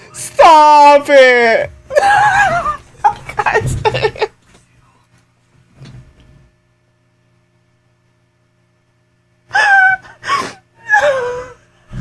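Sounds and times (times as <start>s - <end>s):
woman laughing in squeals: 1.9s - 3.4s, 9.5s - 11.6s.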